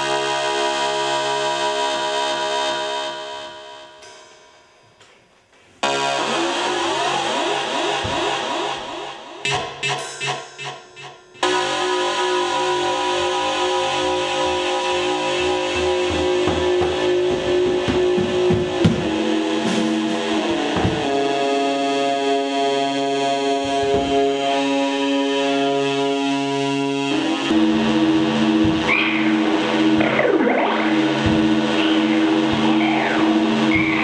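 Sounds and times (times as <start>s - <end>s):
electric guitar with effects: 0.0s - 4.3s, 5.8s - 34.0s.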